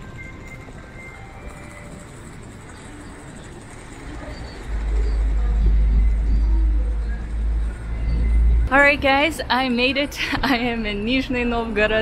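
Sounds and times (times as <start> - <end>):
distant traffic: 0.0 - 12.0
people in city square: 0.0 - 12.0.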